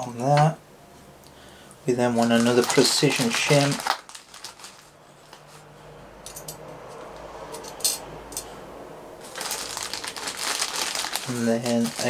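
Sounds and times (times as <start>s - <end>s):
plastic bag crinkling: 2.0s - 5.5s, 9.2s - 12.0s.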